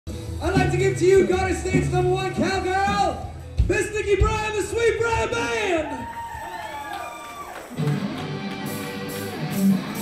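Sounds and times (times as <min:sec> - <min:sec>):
country rock band playing: 0:00.1 - 0:05.6, 0:07.6 - 0:10.0.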